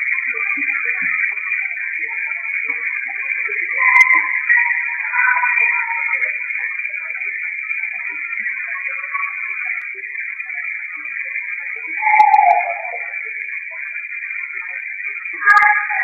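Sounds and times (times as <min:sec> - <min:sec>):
falling tone: 0:12.0 - 0:13.1.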